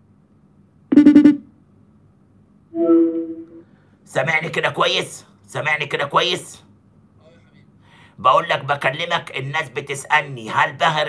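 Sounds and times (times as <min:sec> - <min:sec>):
buzzy electronic phone beep: 0:00.9 - 0:01.4, 0:02.8 - 0:03.6.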